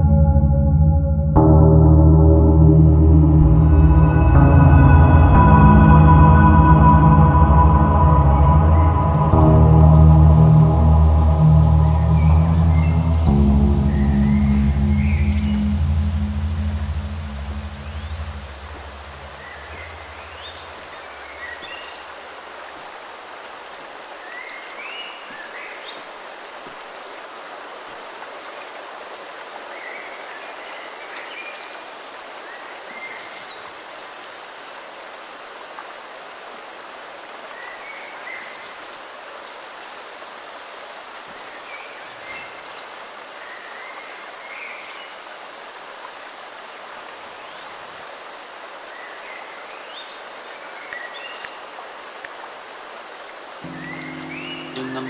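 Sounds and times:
stream rushing over rocks: 8.8 - 55.0.

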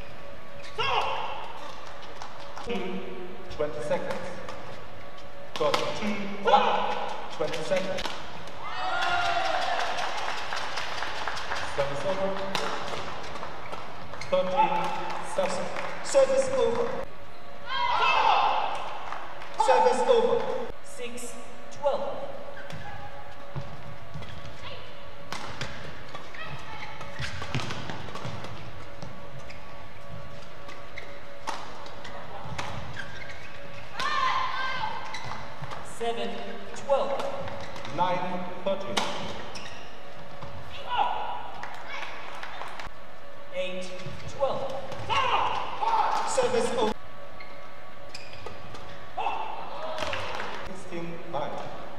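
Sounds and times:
court shoes squeaking: 0.0 - 20.8, 21.7 - 51.9
rackets smacking shuttlecock: 6.9 - 16.0, 25.2 - 29.1, 30.7 - 34.4.

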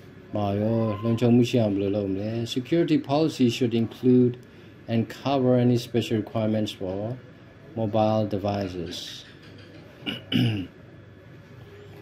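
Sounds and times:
man clearing his throat: 10.0 - 10.8.

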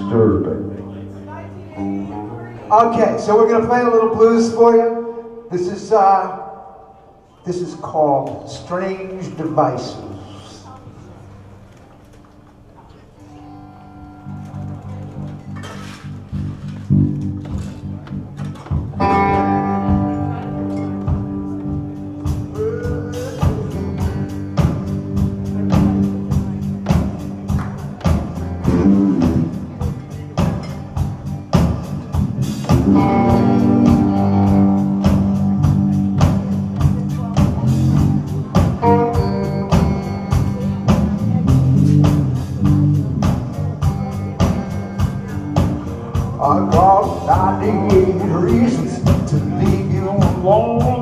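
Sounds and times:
bass guitar: 0.0 - 5.9, 13.2 - 51.0
electric guitar with bent notes: 13.2 - 51.0
drum kit steady beat: 16.3 - 51.0.

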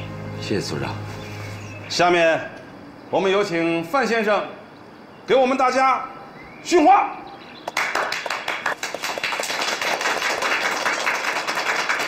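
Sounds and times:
people clapping: 7.6 - 12.0.

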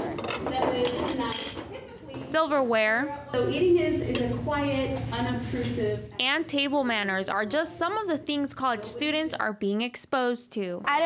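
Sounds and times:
forks clinking on plates: 0.0 - 2.2
people talking: 0.0 - 11.0.

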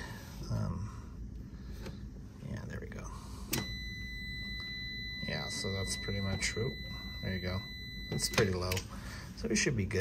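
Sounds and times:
meter click: 3.5 - 8.9
steady high beep tone: 3.6 - 8.8.

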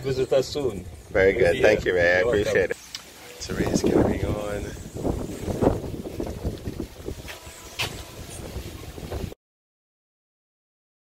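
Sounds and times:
wind buffeting microphone: 3.4 - 9.4.

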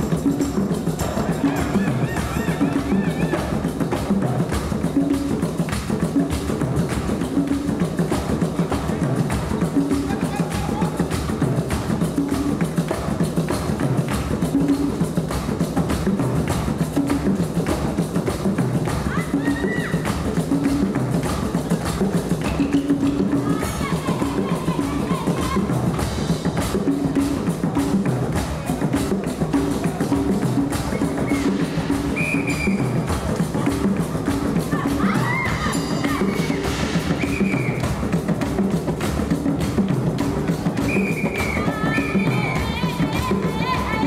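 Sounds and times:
marimba playing: 0.0 - 5.4, 19.0 - 44.0
drums and percussion: 0.0 - 44.0.

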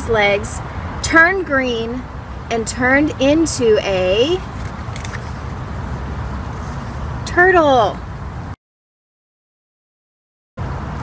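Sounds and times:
road traffic rumble: 0.0 - 8.6, 10.6 - 11.0
book page rustling: 4.4 - 5.6.

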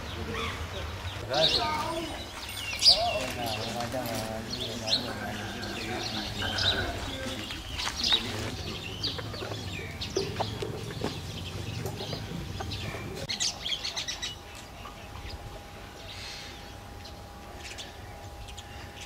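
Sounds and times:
low outdoor rumble: 0.0 - 19.0
small birds chirping: 0.0 - 19.0.

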